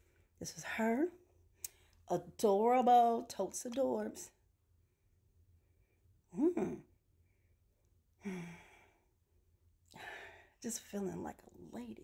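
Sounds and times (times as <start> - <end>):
woman sighing: 6.3 - 6.9, 8.2 - 9.0.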